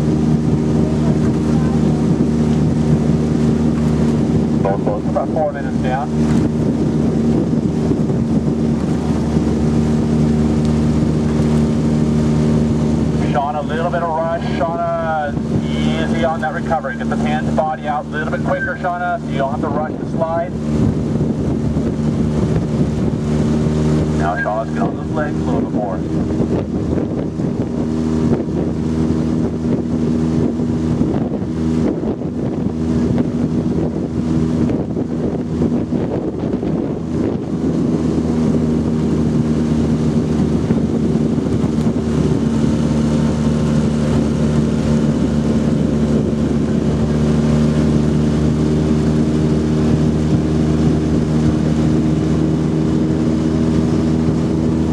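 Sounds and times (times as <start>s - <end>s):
outboard motor running: 0.0s - 54.9s
wind buffeting microphone: 0.0s - 54.9s.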